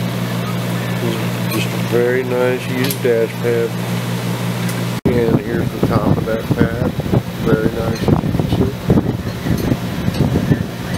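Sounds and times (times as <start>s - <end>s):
low rumbling microphone noise: 0.8s - 10.9s.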